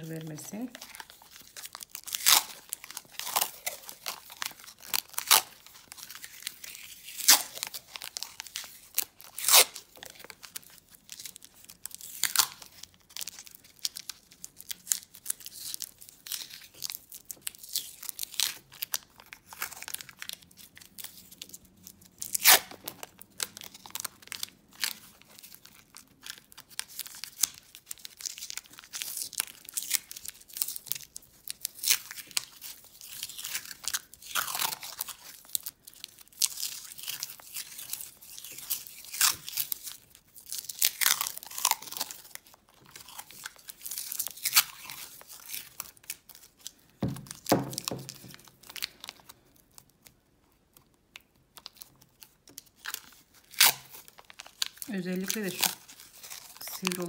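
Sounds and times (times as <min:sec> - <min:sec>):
tape peeling and crinkling: 0:00.0 - 0:57.0.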